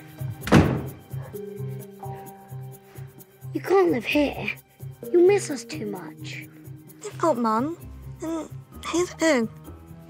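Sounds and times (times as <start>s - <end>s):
bedroom door shutting: 0.4s - 1.2s.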